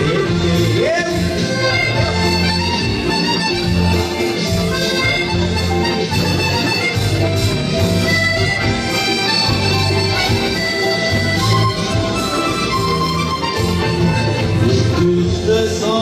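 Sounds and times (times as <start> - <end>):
button accordion playing lively tune: 0.0 - 15.3.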